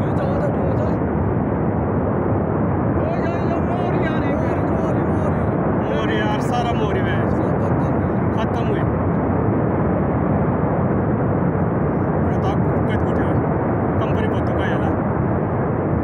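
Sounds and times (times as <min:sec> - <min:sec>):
faint voices: 0:00.0 - 0:01.0, 0:03.0 - 0:08.9
flood and debris roaring: 0:02.9 - 0:08.8.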